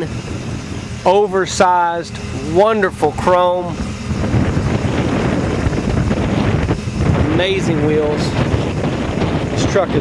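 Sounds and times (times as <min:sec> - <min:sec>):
truck engine idling: 0:00.0 - 0:10.0
wind buffeting microphone: 0:00.0 - 0:10.0.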